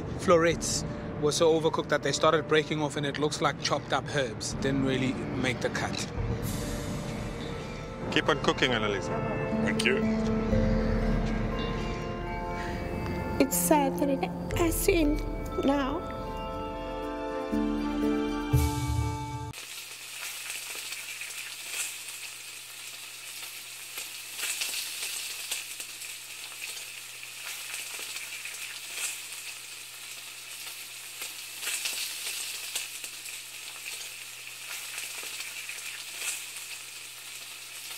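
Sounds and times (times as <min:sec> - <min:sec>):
music: 0:00.0 - 0:19.6
crackling sizzle: 0:19.5 - 0:37.9.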